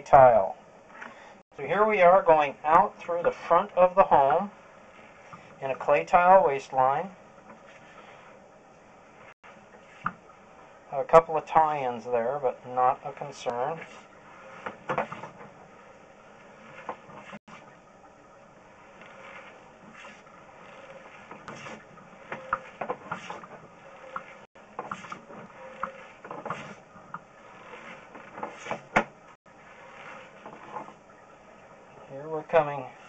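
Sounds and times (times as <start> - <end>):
cable and reel clicking: 18.8 - 28.8.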